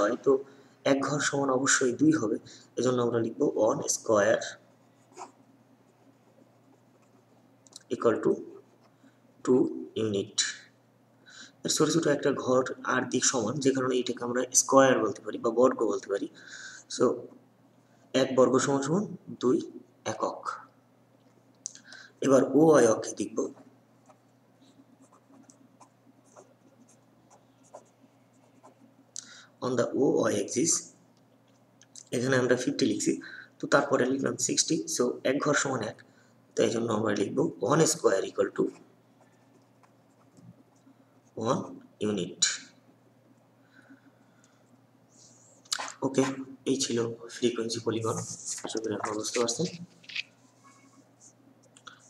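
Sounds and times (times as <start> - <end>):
low steady hum: 0.0 - 52.0
pen scratching on paper: 4.9 - 7.4, 25.0 - 28.8.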